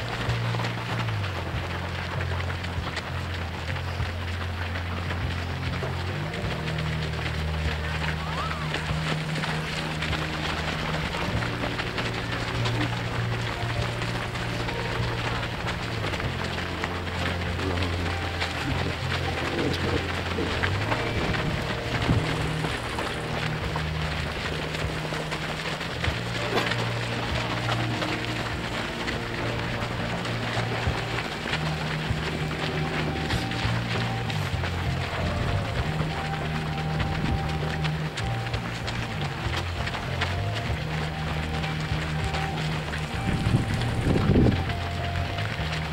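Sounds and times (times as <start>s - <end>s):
music with long low notes: 0.0s - 45.9s
runners' footsteps on dirt path: 0.0s - 45.9s.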